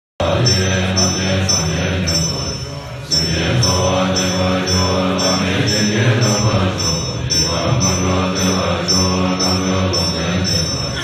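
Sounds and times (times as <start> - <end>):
monks chanting: 0.2 - 11.0.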